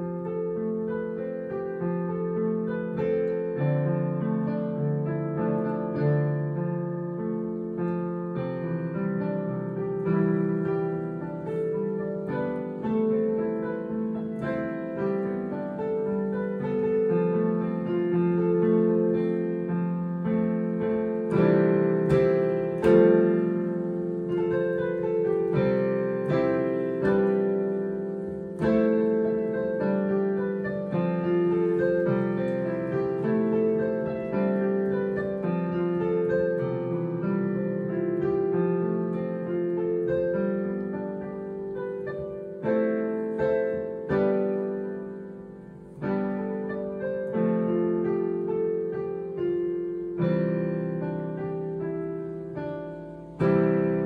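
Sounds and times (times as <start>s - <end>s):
digital piano chords and melody: 0.0s - 54.0s.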